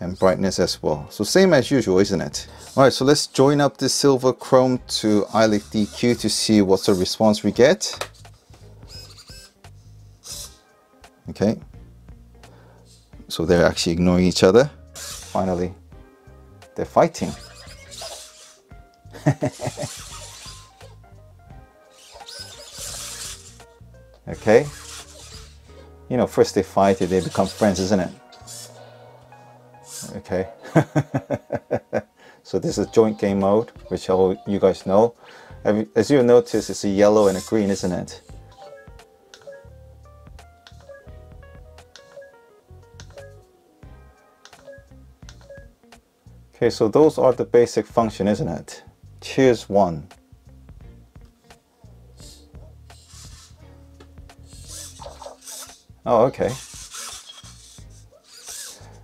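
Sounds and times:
background music with bass line: 4.5 - 59.0
servo motors whirring: 5.2 - 7.2, 8.9 - 9.6, 10.2 - 10.6, 15.0 - 15.5, 17.3 - 18.7, 19.4 - 21.0, 21.9 - 23.7, 24.3 - 25.8, 26.8 - 28.8, 29.8 - 30.2, 36.5 - 37.9, 52.2 - 53.6, 54.4 - 59.0
squeaky cartoon-voice chirps: 8.9 - 9.5, 17.3 - 18.6, 19.8 - 21.0, 54.5 - 55.7.

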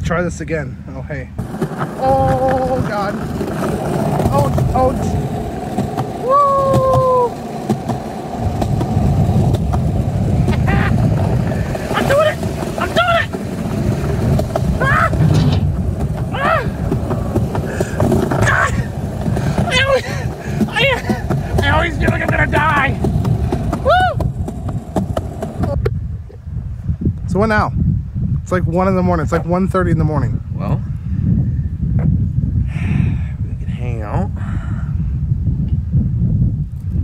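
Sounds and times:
skateboard wheels rumbling on pavement: 1.0 - 26.2
person shouting exclamations: 14.8 - 15.2, 16.3 - 16.8.

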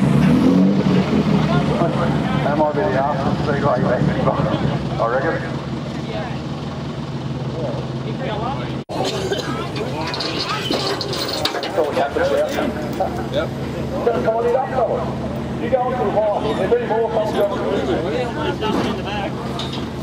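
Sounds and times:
several voices talking: 1.0 - 20.0.

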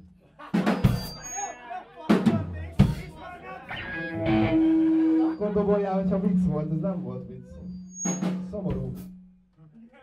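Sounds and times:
drum hits with cymbal splash: 0.6 - 1.2
steady held note: 4.2 - 7.9.

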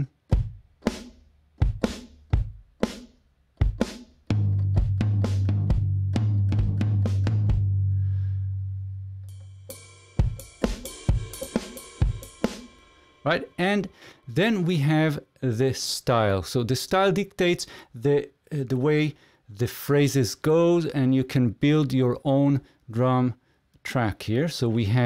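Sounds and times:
cymbal ringing: 9.3 - 14.7
rock drum hits: 9.6 - 13.0.

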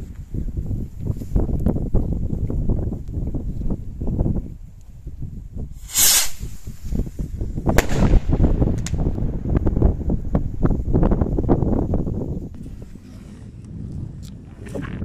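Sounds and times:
wind buffeting microphone: 0.0 - 15.0
firework rocket cracks: 5.8 - 9.9.

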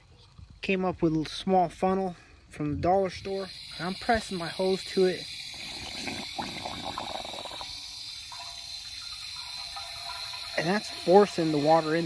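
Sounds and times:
water running through funnel: 2.9 - 12.0.

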